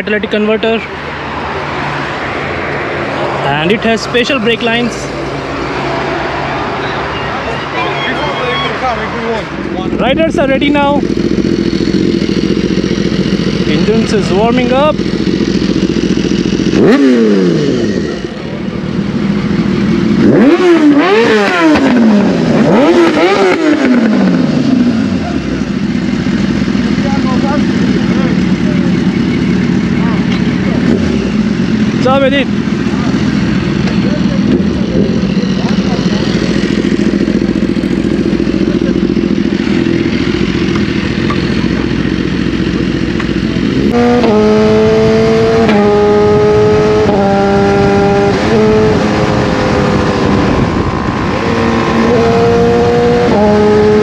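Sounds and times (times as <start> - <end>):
outdoor traffic noise: 0.0 - 54.0
vehicle engine running: 0.0 - 54.0.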